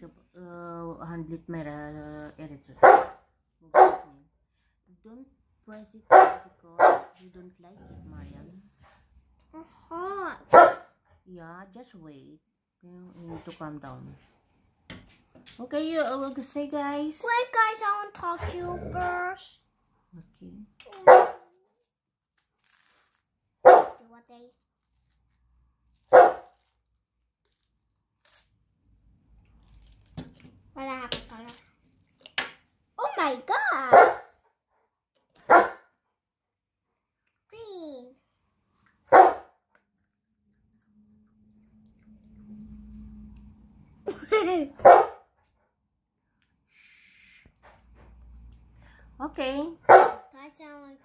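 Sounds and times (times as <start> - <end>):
dog barking: 2.8 - 4.1, 6.1 - 7.2, 10.5 - 10.9, 21.0 - 21.5, 23.6 - 24.0, 26.1 - 26.5, 33.8 - 34.4, 35.4 - 35.9, 39.1 - 39.6, 44.8 - 45.3, 49.8 - 50.3.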